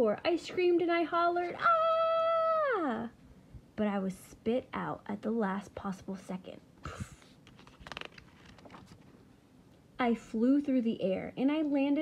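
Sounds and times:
woman speaking: 0:00.0 - 0:03.2, 0:03.8 - 0:07.1, 0:10.0 - 0:12.0.

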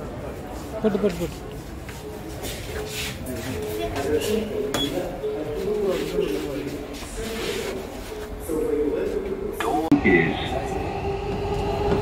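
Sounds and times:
train rumbling with steady whine: 0:05.2 - 0:12.0.

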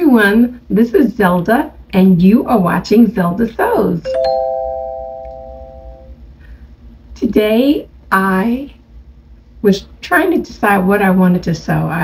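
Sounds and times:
rising three-note chime: 0:04.1 - 0:06.1.

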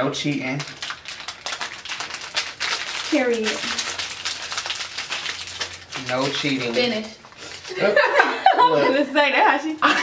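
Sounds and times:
wrappers crinkling and crackling: 0:00.0 - 0:08.0, 0:09.4 - 0:10.0.

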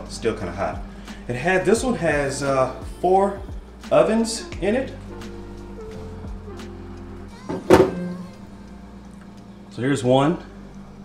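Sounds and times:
music with held notes: 0:00.8 - 0:09.7.

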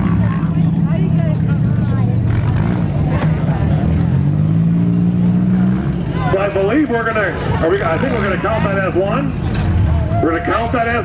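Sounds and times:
car engines idling: 0:00.0 - 0:11.0
faint voices: 0:00.0 - 0:11.0.

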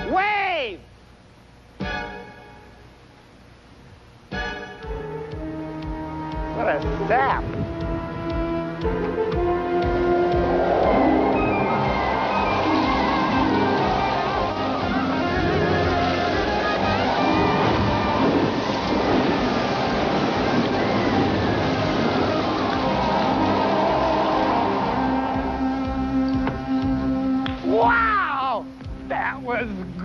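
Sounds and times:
music: 0:01.7 - 0:03.0, 0:04.2 - 0:30.0
water pouring from tanks: 0:09.8 - 0:27.0
wave crashing into water: 0:10.4 - 0:25.6.

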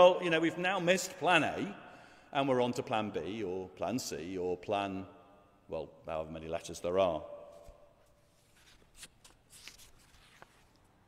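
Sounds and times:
paper rustling: 0:07.6 - 0:11.0.

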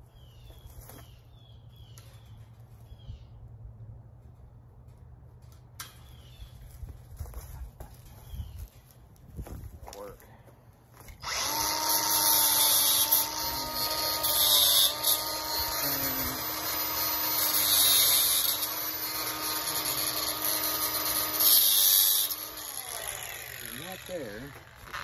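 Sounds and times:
cut-off grinder whining: 0:11.1 - 0:25.0
disc hissing cutting wire: 0:11.2 - 0:25.0.

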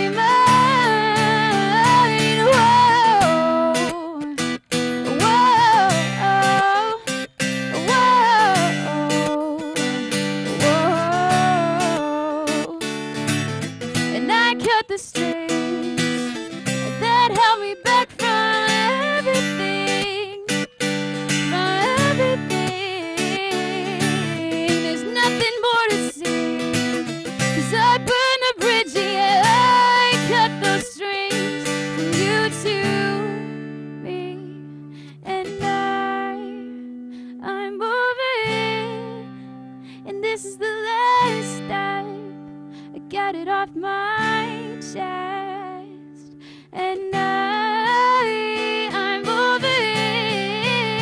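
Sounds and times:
strummed acoustic guitar: 0:00.0 - 0:51.0
woman singing: 0:00.0 - 0:51.0.

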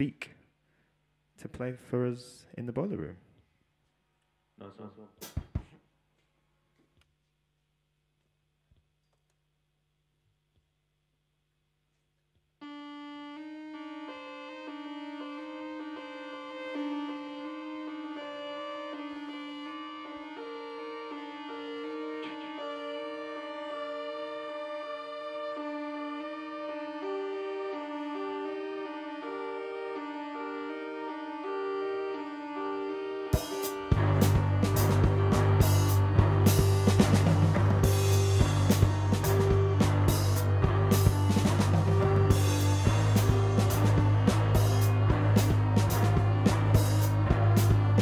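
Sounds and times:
drum kit beat: 0:05.2 - 0:05.8, 0:33.4 - 0:48.0
organ-like keyboard notes: 0:12.6 - 0:48.0
bass guitar: 0:33.4 - 0:48.0.

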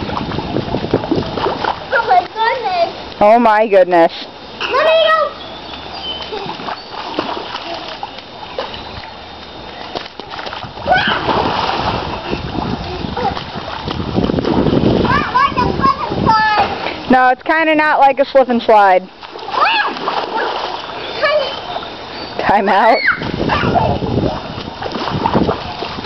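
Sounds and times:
bare feet splashing in puddle: 0:05.6 - 0:15.4, 0:19.1 - 0:21.9, 0:23.1 - 0:26.0
child crying out: 0:10.9 - 0:11.3, 0:22.9 - 0:24.0.

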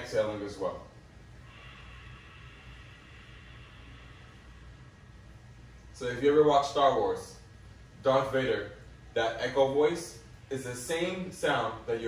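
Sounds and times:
hollow hissing exhale: 0:01.3 - 0:05.5.

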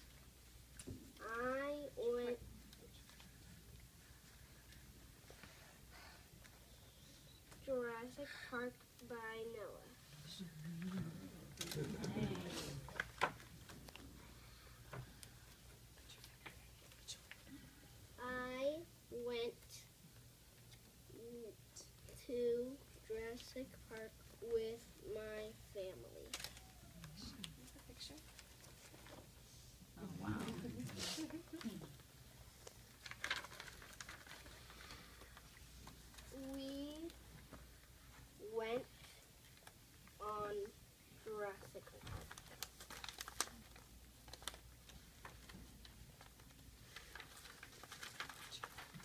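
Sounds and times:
paper book pages handled: 0:32.6 - 0:36.6, 0:42.1 - 0:49.0.

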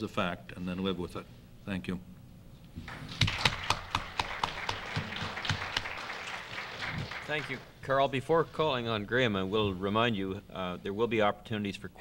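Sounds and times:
audience applauding: 0:02.9 - 0:07.8.

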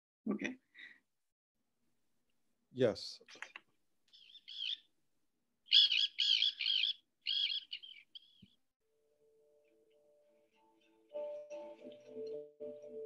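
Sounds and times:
bird calls: 0:03.4 - 0:04.9, 0:05.7 - 0:08.6.

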